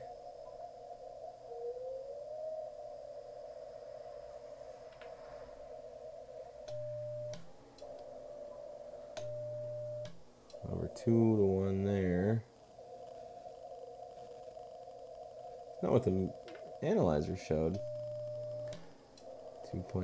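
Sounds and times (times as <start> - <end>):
low hum: 0.0 - 20.0
steady morse sidetone: 0.0 - 20.0
radio band noise hiss: 2.8 - 20.0
transmitter click: 6.7 - 8.1, 9.2 - 10.6, 18.6 - 19.3
gliding radio tone: 10.6 - 20.0.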